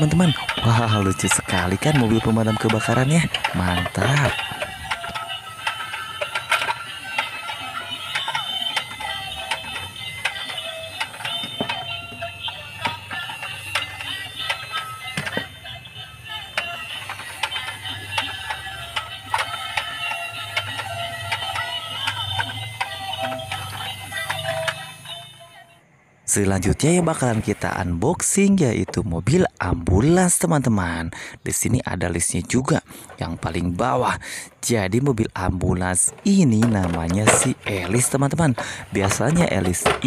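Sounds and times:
small toy clicks: 0.0 - 25.4
toy playing electronic song: 0.0 - 25.8, 35.8 - 40.0.

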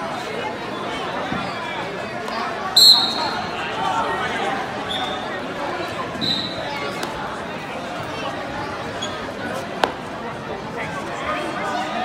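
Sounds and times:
spectators talking: 0.0 - 12.0
referee's whistle blasts: 2.8 - 3.5, 6.2 - 6.6.

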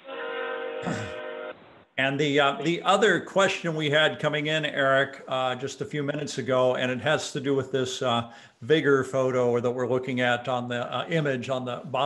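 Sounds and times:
horn-like held chord: 0.0 - 1.6, 2.2 - 2.9.

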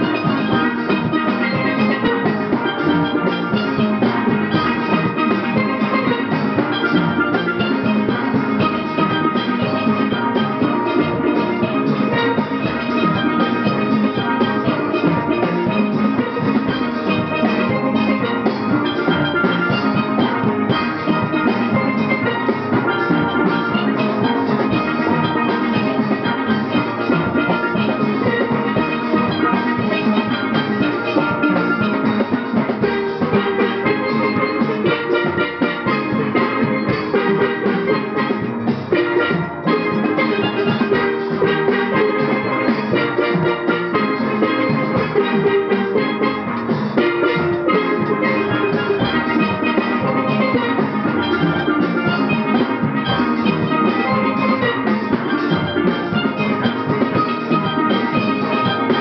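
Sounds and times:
steel orchestra playing: 0.0 - 59.0.

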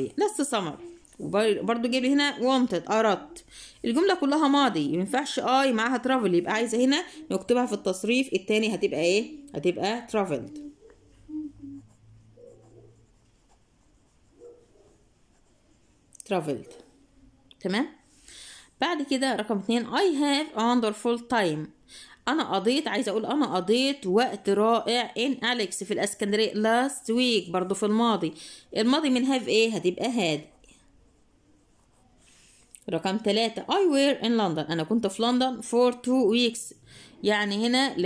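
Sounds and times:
pen scratching on paper: 9.8 - 16.9, 29.0 - 32.5.

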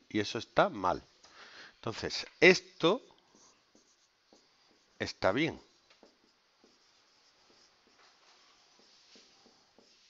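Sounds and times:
marker scratching on whiteboard: 2.9 - 10.0.

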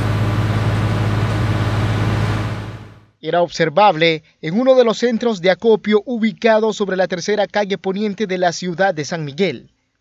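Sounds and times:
even rushing noise: 0.0 - 3.0
low engine hum: 0.0 - 3.1.

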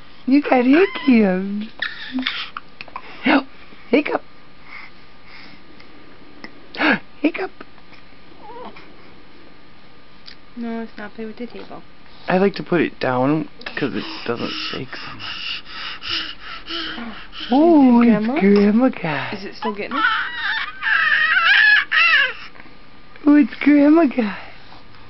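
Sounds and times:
baby cooing: 1.8 - 2.6, 8.4 - 8.9, 13.6 - 18.4, 19.6 - 22.5
baby squealing happily: 1.8 - 2.6, 19.6 - 22.5.

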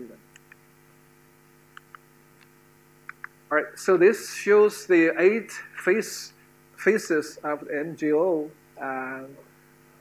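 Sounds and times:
electrical mains hum: 0.0 - 10.0
faint short clicks: 1.7 - 3.4.

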